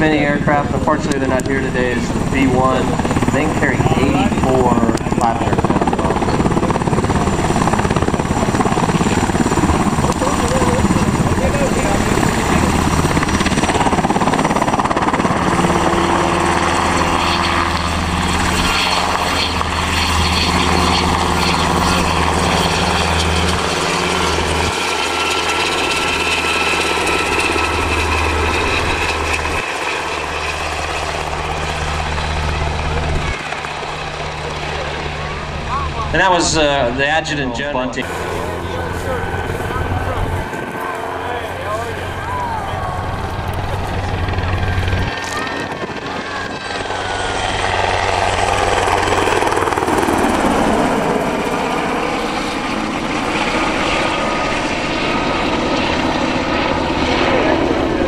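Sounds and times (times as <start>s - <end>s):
helicopter flying low past: 0.0s - 58.0s.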